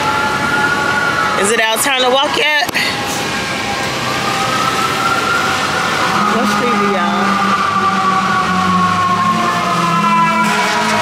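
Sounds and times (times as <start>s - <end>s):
distant siren wailing: 0.0s - 11.0s
traffic on wet pavement: 0.0s - 11.0s.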